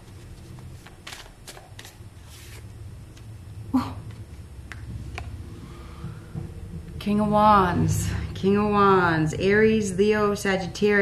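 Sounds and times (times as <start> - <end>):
cards being shuffled: 0.0 - 3.3
low room hum: 0.0 - 11.0.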